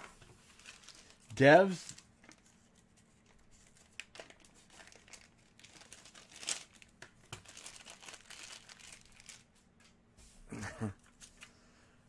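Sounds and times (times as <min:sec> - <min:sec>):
packaging crinkling and rustling: 0:00.4 - 0:09.6.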